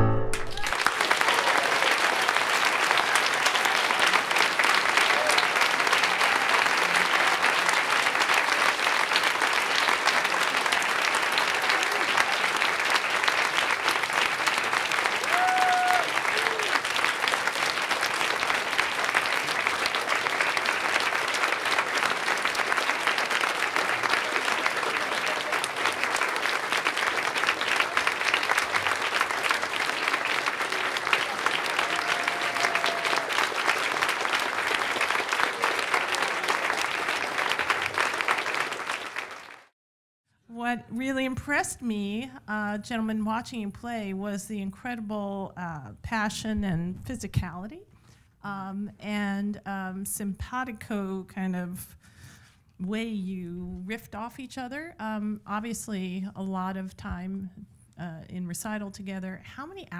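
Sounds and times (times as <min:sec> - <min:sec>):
audience applauding: 0:00.0 - 0:39.7.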